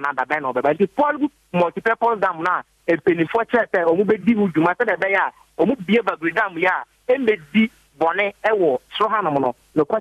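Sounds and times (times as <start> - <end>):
man talking over a telephone: 0.0 - 10.0.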